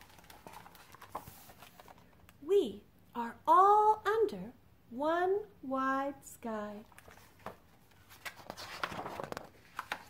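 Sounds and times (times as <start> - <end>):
paper pages rustling: 0.0 - 2.3, 6.9 - 10.0.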